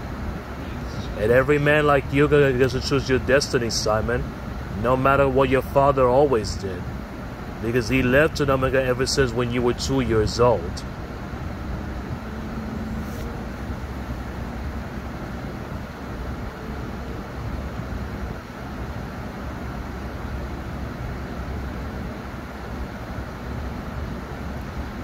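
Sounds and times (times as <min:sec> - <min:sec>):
steady low rumbling: 0:00.0 - 0:22.3.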